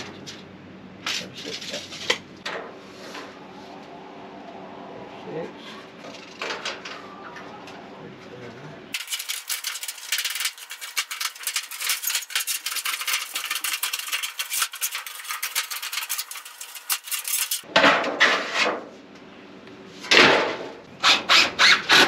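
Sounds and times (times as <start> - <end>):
metal sheet scraping: 9.0 - 18.8.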